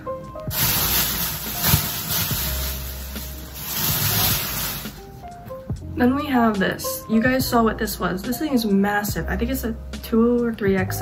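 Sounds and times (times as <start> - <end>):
soft background music: 0.0 - 11.0
clothing rustling: 0.4 - 5.4.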